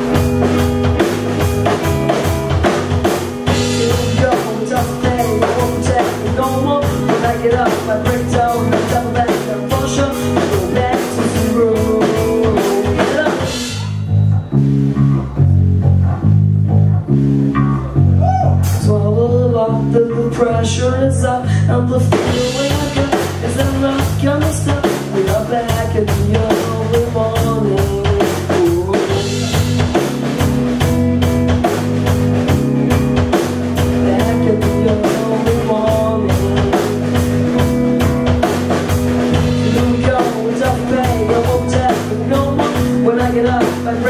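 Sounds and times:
bending lead guitar melody: 0.0s - 44.0s
live rock band playing: 0.0s - 44.0s.

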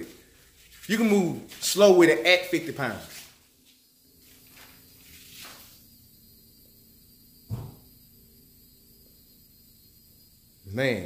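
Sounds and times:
dull thump: 7.5s - 7.9s.

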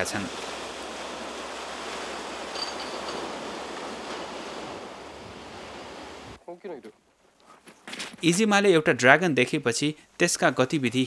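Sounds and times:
waves washing on sandy beach: 0.0s - 6.4s.

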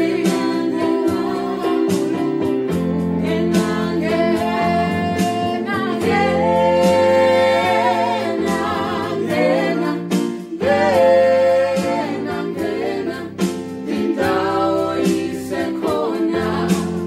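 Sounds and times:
electronic keyboard: 0.0s - 17.0s
group singing gospel in harmony: 0.0s - 17.0s.

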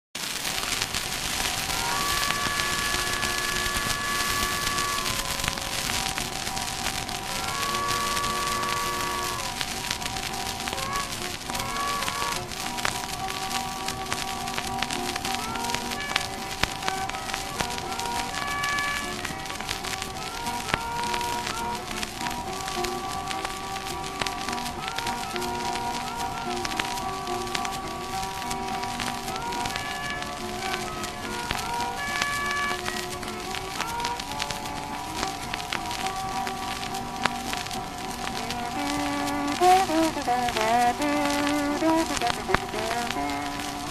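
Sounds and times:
record surface crackle and hiss: 0.2s - 43.9s
harmonica and guitar blues: 0.5s - 43.9s.

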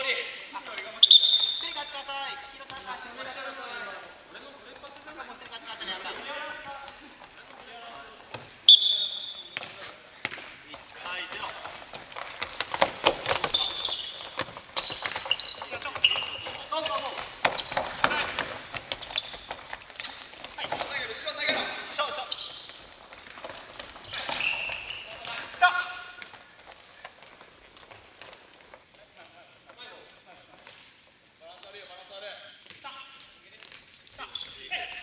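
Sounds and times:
sneakers squeaking: 0.1s - 29.7s, 32.5s - 35.0s.

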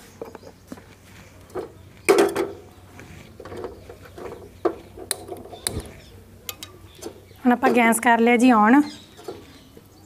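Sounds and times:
handling clicks and knocks: 0.2s - 8.1s, 9.1s - 9.8s.

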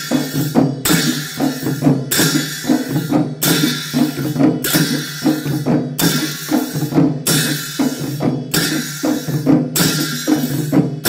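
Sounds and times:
drums beating a rhythm: 0.0s - 11.0s
large cymbals clashing: 0.0s - 11.0s.

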